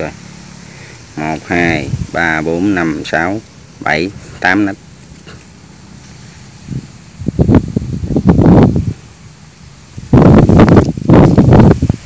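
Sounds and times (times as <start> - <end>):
rice plants rustling against microphone: 0.0 - 12.0.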